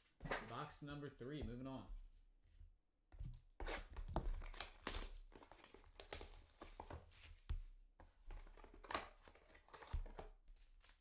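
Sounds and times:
box and wrapper rustling: 0:03.9 - 0:07.5, 0:08.2 - 0:11.0.

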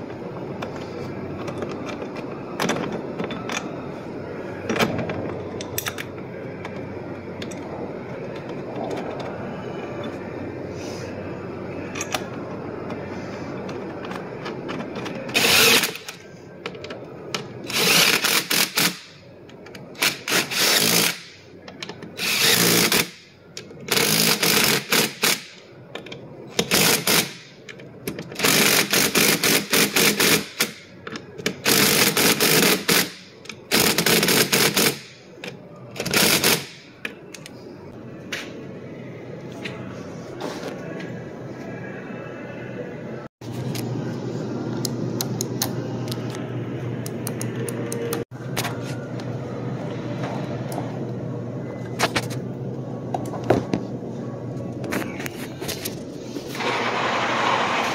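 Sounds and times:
steady background noise: 0:00.0 - 0:57.9.

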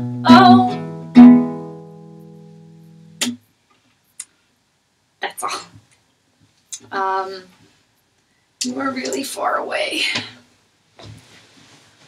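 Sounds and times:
acoustic guitar chord ringing: 0:00.0 - 0:03.4.

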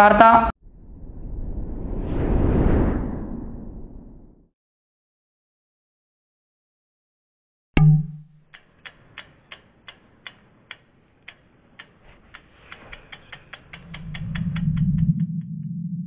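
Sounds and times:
low swell and hum: 0:00.6 - 0:04.4, 0:13.8 - 0:16.0
clock-like ticks speeding up: 0:08.5 - 0:16.0.

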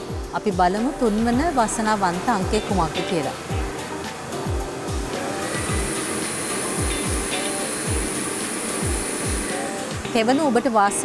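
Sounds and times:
background music with thudding beat: 0:00.0 - 0:10.3
steady rush of air: 0:03.4 - 0:10.1.

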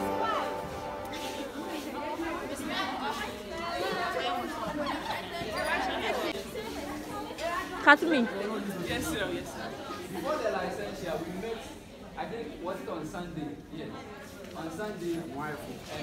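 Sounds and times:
many voices chattering in hall: 0:00.0 - 0:16.0.

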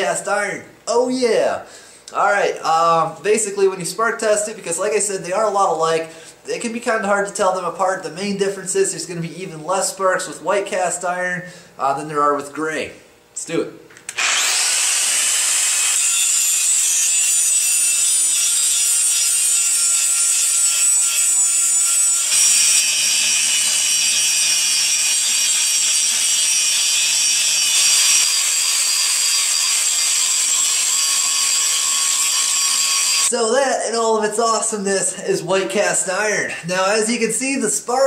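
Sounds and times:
angle grinder grinding metal: 0:14.2 - 0:33.3.

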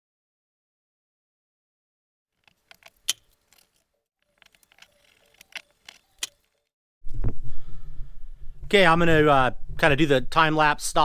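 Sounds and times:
hand tools clicking and tapping: 0:02.4 - 0:06.6.

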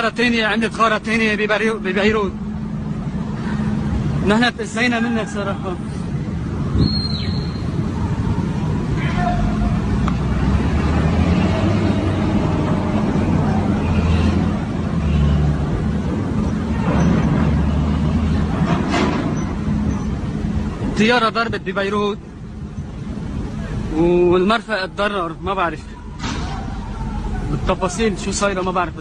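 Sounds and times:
wind buffeting microphone: 0:01.9 - 0:24.3
faint voices: 0:07.7 - 0:10.5, 0:25.2 - 0:29.0.

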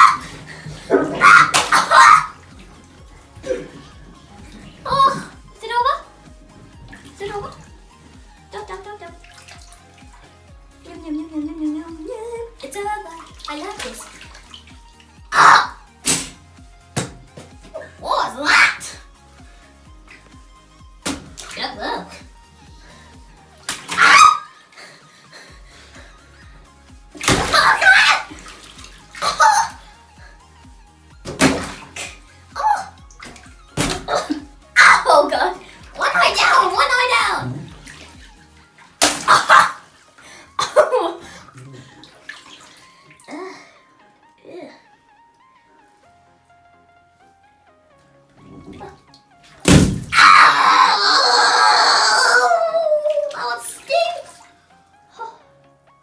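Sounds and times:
water splashes: 0:00.0 - 0:19.0, 0:21.0 - 0:22.3, 0:22.9 - 0:24.8, 0:27.1 - 0:30.3, 0:31.1 - 0:43.4, 0:48.4 - 0:50.7, 0:52.2 - 0:54.6
water sloshing in a bathtub: 0:00.0 - 0:43.9, 0:48.2 - 0:55.4
background music with steady beat: 0:00.0 - 0:51.9, 0:52.6 - 0:56.0
child's voice: 0:04.8 - 0:06.1, 0:07.2 - 0:07.7, 0:08.5 - 0:09.2, 0:10.8 - 0:14.1, 0:17.8 - 0:19.0, 0:34.2 - 0:37.7, 0:44.4 - 0:44.9, 0:52.4 - 0:54.5.

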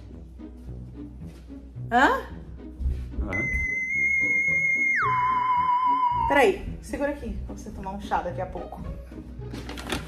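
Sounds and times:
soft background music: 0:00.0 - 0:10.0
high synthetic beep dropping in pitch: 0:03.4 - 0:06.3.

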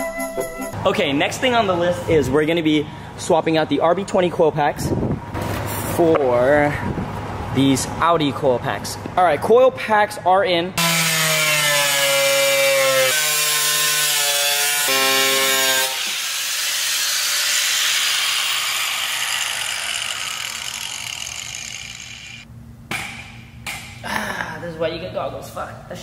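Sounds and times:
angle grinder cutting sheet metal: 0:10.8 - 0:22.5.

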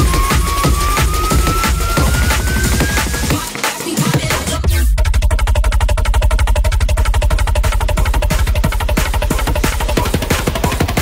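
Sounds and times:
deep pulsing bass: 0:00.0 - 0:03.5, 0:04.2 - 0:11.0
fast drum roll: 0:00.0 - 0:11.0.

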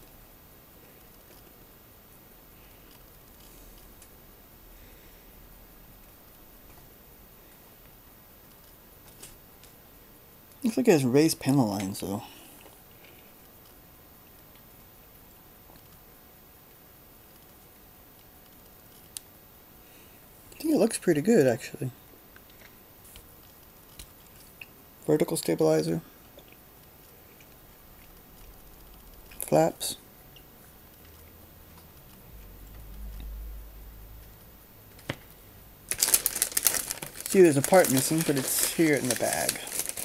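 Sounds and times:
faint room hiss: 0:00.0 - 0:40.0
plastic sprues handled: 0:35.9 - 0:40.0.

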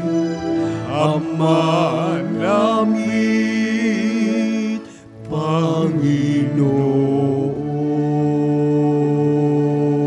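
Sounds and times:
held hymn chords: 0:00.0 - 0:10.0
person singing with vibrato: 0:00.0 - 0:10.0.

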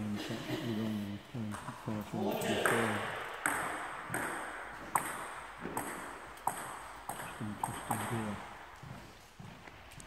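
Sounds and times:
table tennis ball pinging: 0:02.4 - 0:08.4.

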